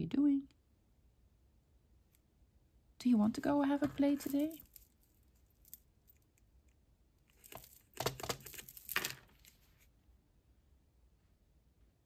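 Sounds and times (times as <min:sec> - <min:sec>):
rustling and scraping: 0:03.7 - 0:06.2, 0:07.2 - 0:10.0.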